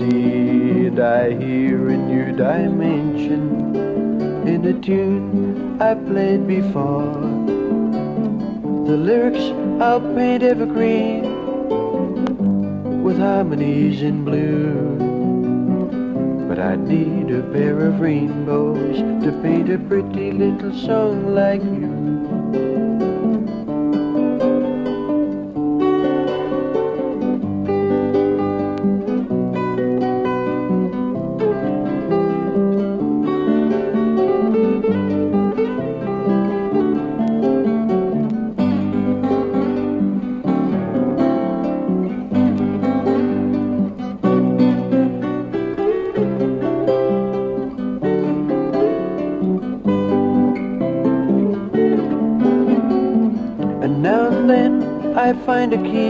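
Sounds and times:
acoustic guitar picking: 0:00.0 - 0:56.0.

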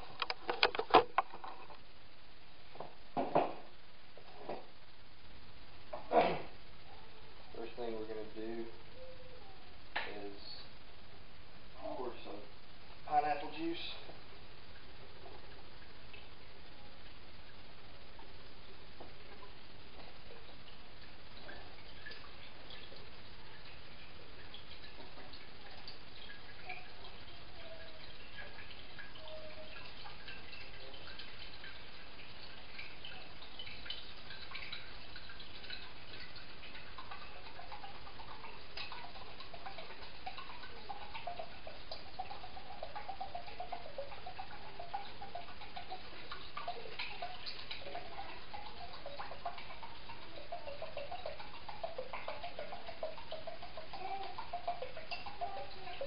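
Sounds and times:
liquid pouring into a crock: 0:11.8 - 0:56.0.

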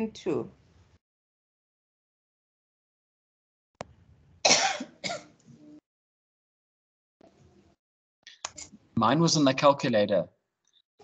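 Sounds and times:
person coughing: 0:04.5 - 0:05.3.

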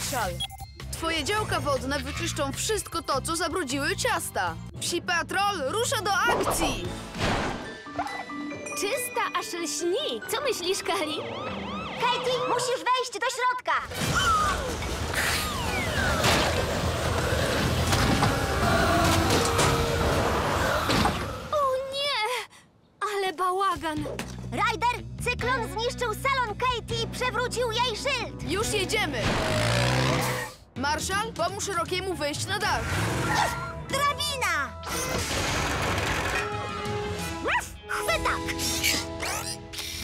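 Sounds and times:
background music: 0:00.0 - 0:13.3, 0:15.5 - 0:21.9, 0:23.2 - 0:40.0
cartoon falling whistles: 0:14.0 - 0:16.4.

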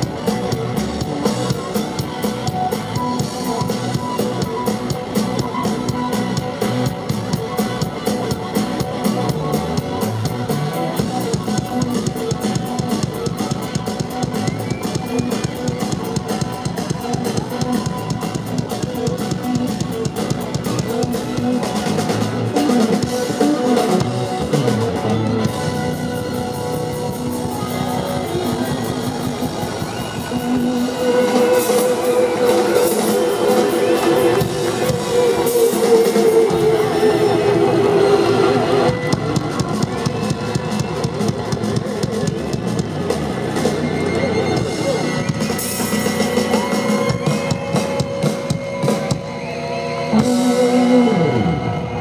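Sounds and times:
electric guitar: 0:00.0 - 0:52.0
live rock band playing: 0:00.0 - 0:52.0
drum strikes: 0:38.7 - 0:49.4.

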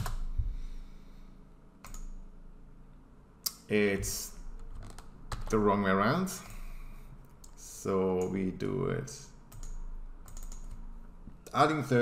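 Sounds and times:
keyboard keys clicking: 0:01.8 - 0:02.2, 0:09.5 - 0:10.8.

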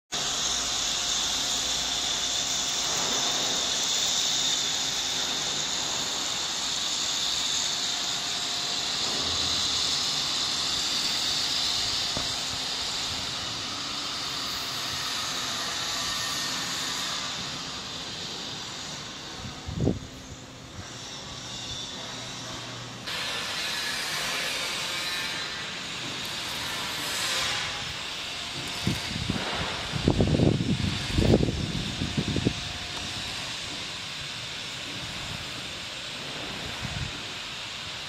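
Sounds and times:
roasting machine fans hissing: 0:00.1 - 0:38.0.

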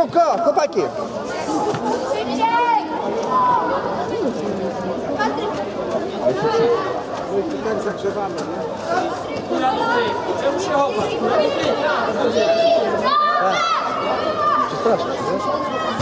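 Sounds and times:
crowd shouting and chattering: 0:00.0 - 0:16.0.

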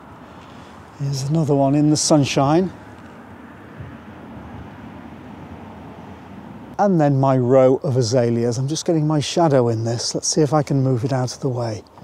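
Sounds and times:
low outdoor background rumble: 0:00.0 - 0:12.0.

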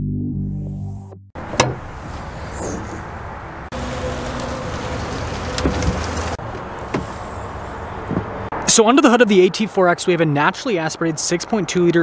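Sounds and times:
vehicle low hum: 0:01.4 - 0:08.6.

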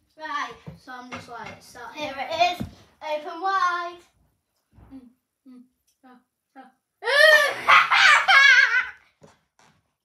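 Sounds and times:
boy laughing loudly: 0:07.1 - 0:09.0.

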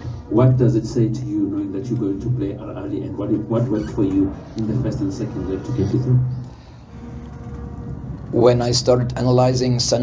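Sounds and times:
low steady hum: 0:00.0 - 0:10.0
man speaking: 0:00.3 - 0:06.4, 0:08.3 - 0:10.0.

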